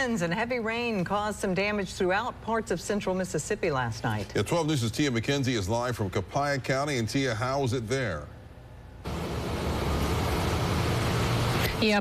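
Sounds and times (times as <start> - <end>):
outdoor background rumble and hiss: 0.0 - 12.0.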